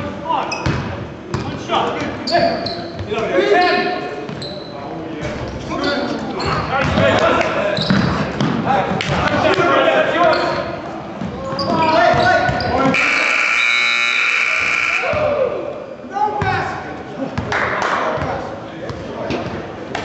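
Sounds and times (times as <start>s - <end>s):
players' voices: 0.0s - 20.0s
scoreboard buzzer: 12.9s - 15.2s.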